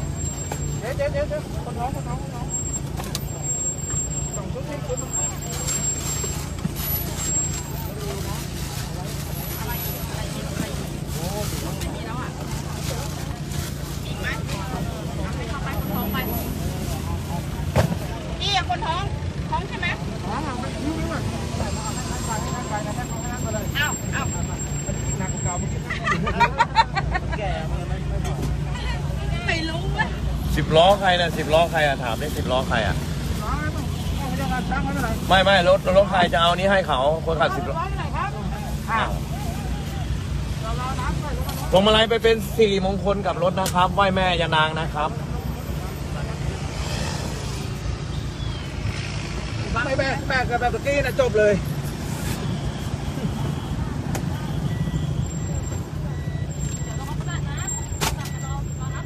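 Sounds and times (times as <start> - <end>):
murmur of crowd voices: 0.0 - 59.0
vehicle engine humming: 0.0 - 59.0.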